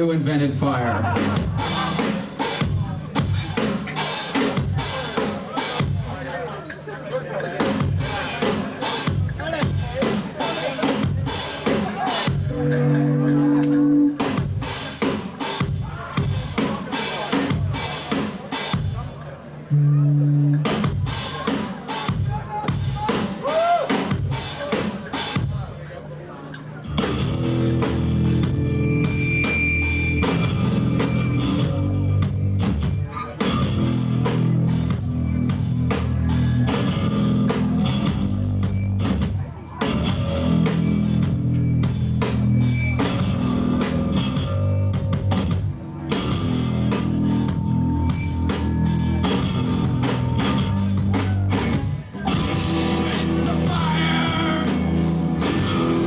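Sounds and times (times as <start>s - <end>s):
live rock band playing: 0.0s - 6.5s, 7.4s - 25.8s, 26.6s - 56.0s
drum hits: 7.6s - 19.0s, 41.8s - 56.0s.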